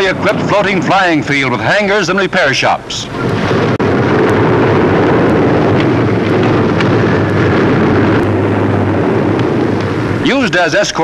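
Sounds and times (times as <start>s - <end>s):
propeller aircraft engine drone: 0.0s - 11.0s.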